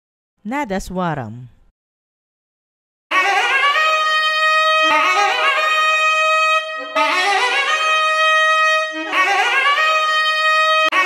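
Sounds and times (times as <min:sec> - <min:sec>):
double-reed wind instrument playing: 0:03.1 - 0:11.0.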